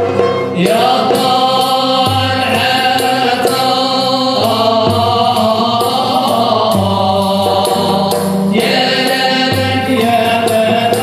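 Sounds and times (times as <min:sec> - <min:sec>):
oud: 0:00.0 - 0:11.0
voices singing together: 0:00.2 - 0:11.0.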